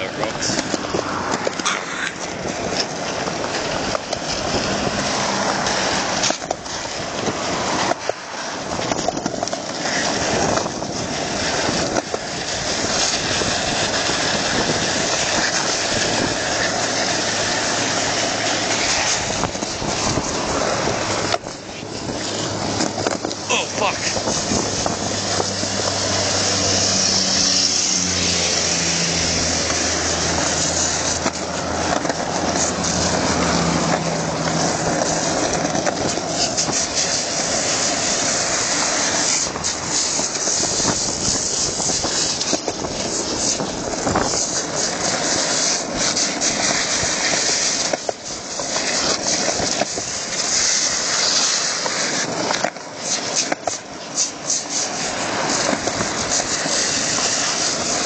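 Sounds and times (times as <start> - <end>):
skateboard wheels and wind rushing: 0.0 - 58.0.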